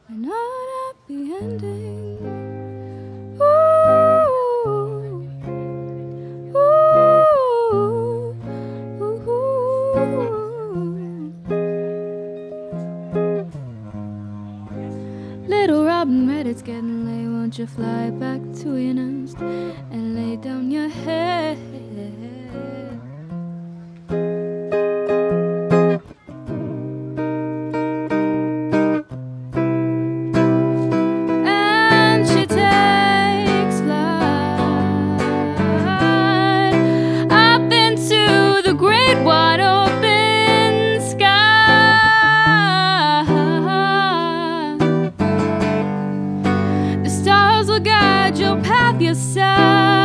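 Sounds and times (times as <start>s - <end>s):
woman singing: 0.0s - 2.7s, 3.3s - 5.5s, 6.4s - 11.6s, 15.4s - 23.0s, 30.2s - 50.0s
electric guitar chords: 1.4s - 50.0s.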